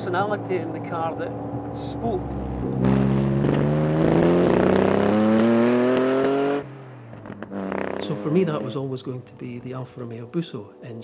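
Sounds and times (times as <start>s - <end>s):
car engine accelerating hard: 0.0s - 8.8s.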